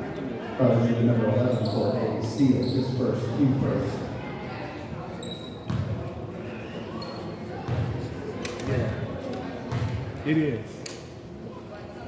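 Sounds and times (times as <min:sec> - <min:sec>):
basketball bouncing on wooden floor: 0:09.7 - 0:10.0.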